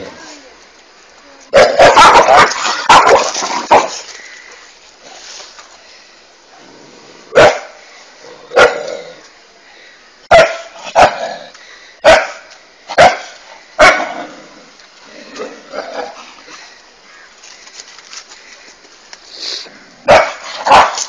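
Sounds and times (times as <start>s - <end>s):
dog barking: 1.6s - 3.9s, 7.3s - 7.8s, 8.6s - 8.9s, 10.3s - 11.2s, 12.0s - 12.4s, 13.0s - 14.1s, 20.1s - 21.0s.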